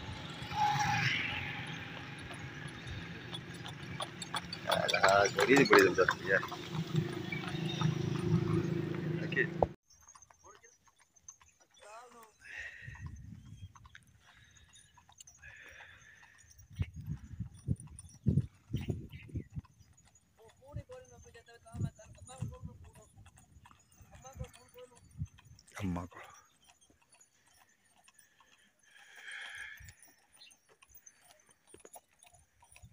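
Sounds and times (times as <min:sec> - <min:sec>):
distant voices calling: 0:00.0 - 0:20.6, 0:23.3 - 0:32.9
cart rumbling: 0:00.0 - 0:32.9
hoof clip-clop: 0:00.5 - 0:32.9.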